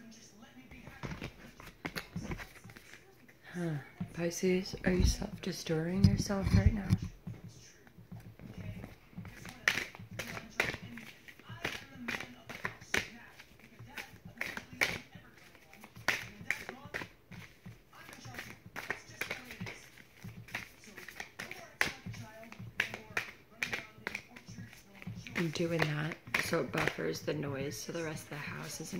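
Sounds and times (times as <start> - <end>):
cards being shuffled: 0.7 - 3.0, 3.6 - 28.9.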